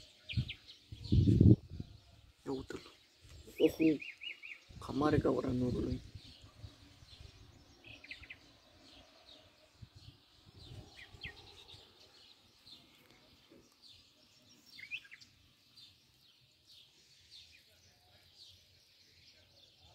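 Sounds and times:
songbirds chirping: 0:00.0 - 0:19.9.

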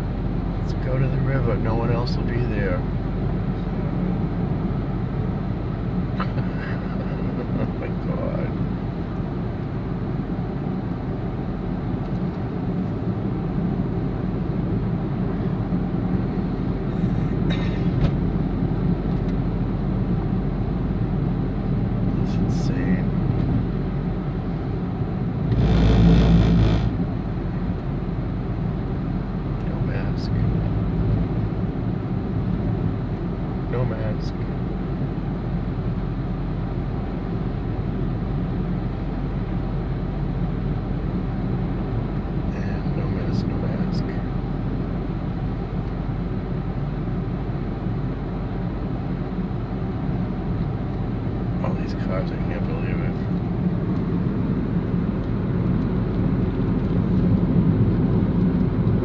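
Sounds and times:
car cabin road noise: 0:00.0 - 0:59.0
rush of noise: 0:25.4 - 0:27.2.

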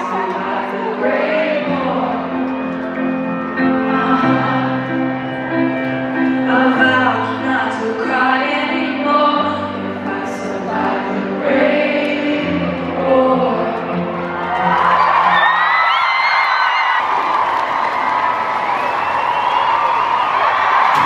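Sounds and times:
crowd screaming and cheering: 0:00.0 - 0:07.0, 0:09.9 - 0:21.0
crowd singing along: 0:00.0 - 0:15.2
live pop concert music: 0:00.0 - 0:21.0.

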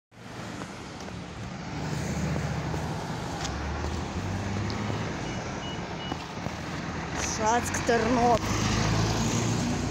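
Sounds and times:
road traffic engine drone: 0:00.1 - 0:09.9
bus approaching: 0:00.2 - 0:09.9.

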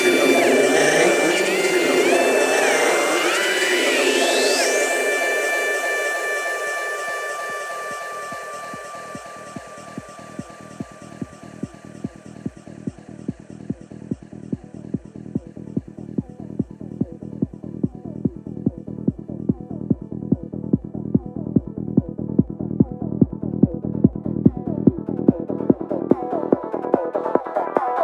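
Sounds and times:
quiet fast electronic pulse: 0:00.0 - 0:26.4
rising synth pitch sweep: 0:00.0 - 0:26.5
layered synths with held tones: 0:00.0 - 0:28.0.

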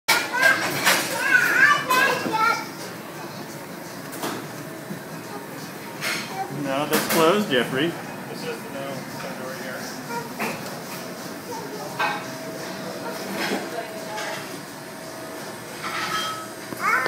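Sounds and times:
faint voices: 0:00.3 - 0:15.8
steady hum: 0:02.5 - 0:17.0.

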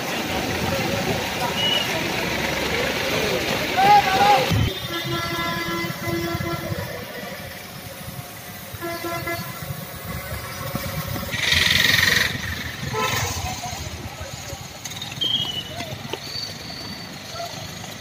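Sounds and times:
road traffic: 0:00.0 - 0:18.0
vehicle horn: 0:04.5 - 0:07.0, 0:08.7 - 0:09.8, 0:12.8 - 0:13.6.

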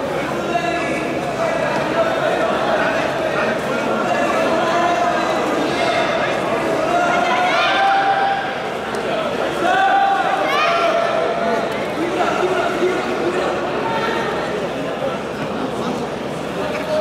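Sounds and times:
crowd shouting and talking: 0:00.0 - 0:17.0.

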